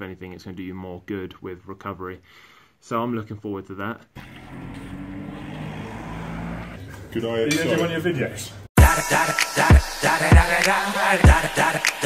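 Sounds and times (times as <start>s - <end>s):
low engine hum: 4.2s - 6.9s.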